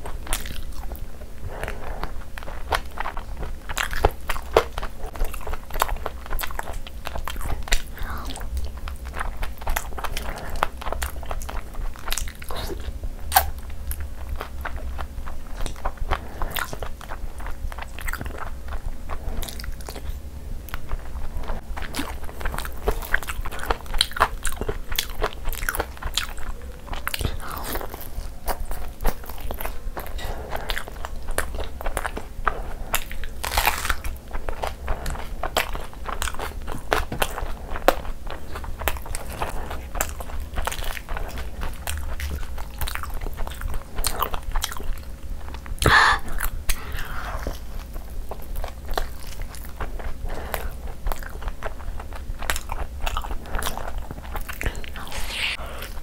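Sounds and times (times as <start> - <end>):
person chewing food: 0.0 - 56.0.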